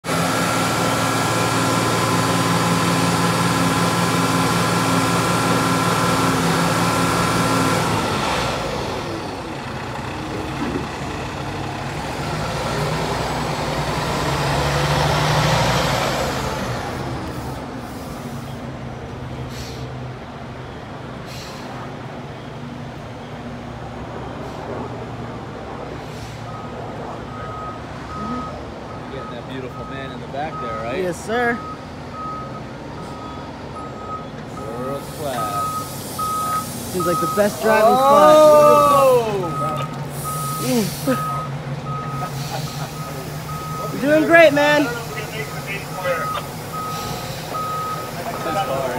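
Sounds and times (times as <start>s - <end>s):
diesel truck engine running: 0.0s - 48.9s
reversing beeps: 26.4s - 48.9s.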